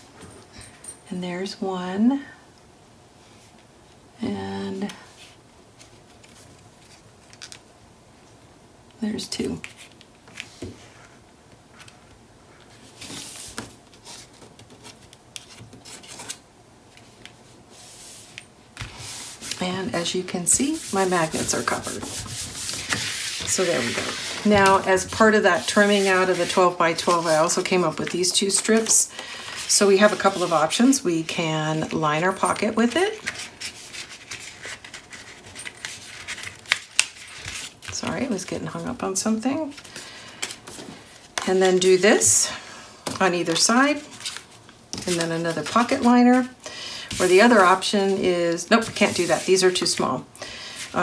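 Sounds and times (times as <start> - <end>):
paper strips rustling on cardstock: 17.8 - 29.0, 29.6 - 31.0, 31.8 - 39.0, 47.1 - 50.1.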